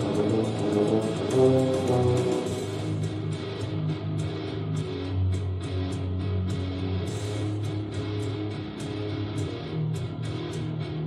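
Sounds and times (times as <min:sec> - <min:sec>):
french horn held notes: 0:00.0 - 0:03.3
tuba low held notes: 0:00.0 - 0:03.7.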